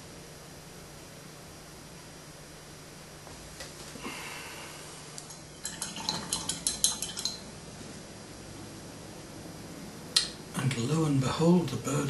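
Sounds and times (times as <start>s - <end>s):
paintbrush clinking against glass jar: 5.3s - 7.5s.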